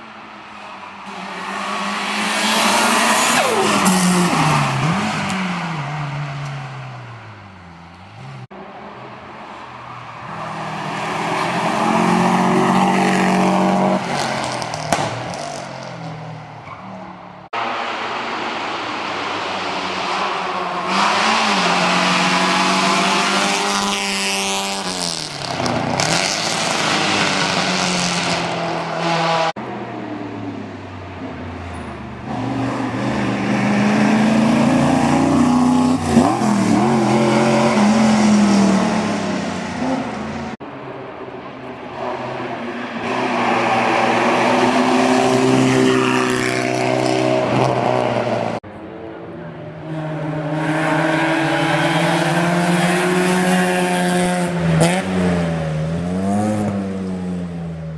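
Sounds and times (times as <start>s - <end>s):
race car engines passing: 0.0s - 57.9s.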